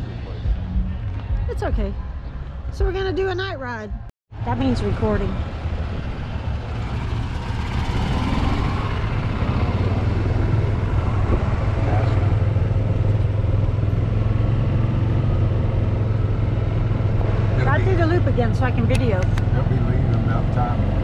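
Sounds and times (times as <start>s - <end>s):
golf cart hum and rumble: 4.4s - 21.0s.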